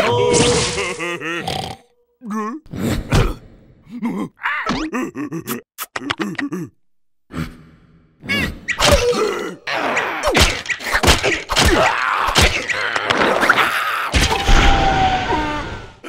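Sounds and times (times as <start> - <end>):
cartoon character cries and groans: 0.0 - 1.5
comic whacks and knocks: 10.2 - 13.2.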